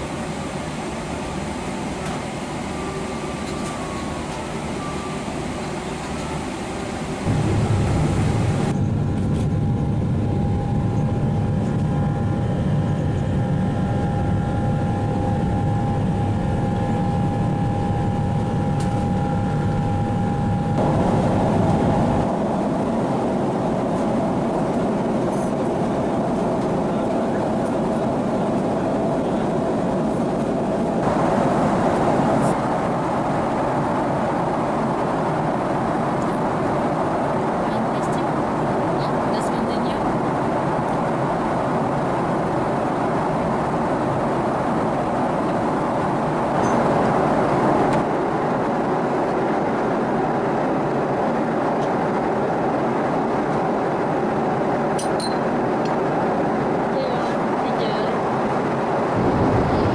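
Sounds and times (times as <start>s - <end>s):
airliner cabin rush: 0.0s - 11.9s, 20.7s - 59.9s
jet engine rumble: 0.0s - 59.9s
steady whine: 0.0s - 59.9s.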